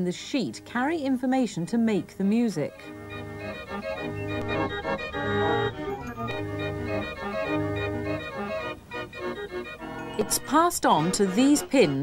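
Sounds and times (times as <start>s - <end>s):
fairground organ playing: 2.7s - 12.0s.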